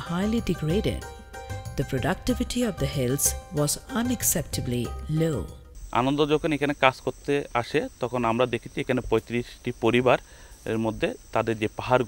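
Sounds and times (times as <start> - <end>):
high-pitched insect drone: 0.0 - 12.0
man speaking: 5.9 - 12.0.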